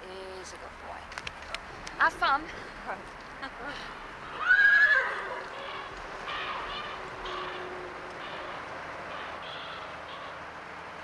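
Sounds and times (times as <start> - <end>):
horse hooves moving: 0.5 - 10.4
horse whinnying: 4.2 - 7.8.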